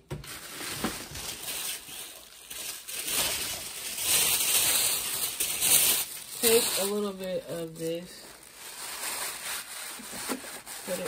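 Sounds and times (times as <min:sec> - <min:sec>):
packaging rustling and crinkling: 0:00.0 - 0:11.0.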